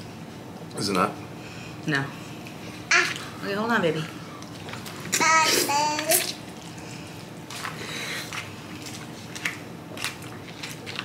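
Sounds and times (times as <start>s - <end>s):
people chewing: 4.4s - 11.0s.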